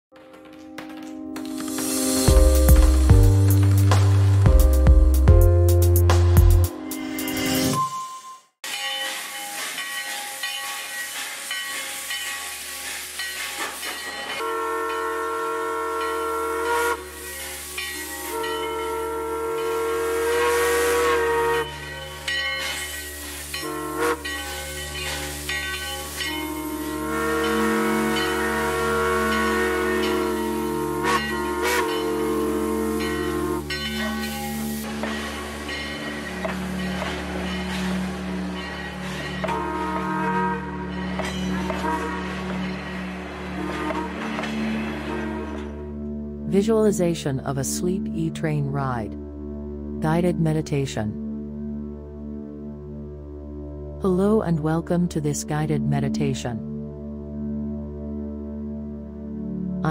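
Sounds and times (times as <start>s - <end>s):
steam locomotive hissing: 8.6s - 45.9s
steam whistle blasts: 13.5s - 46.0s.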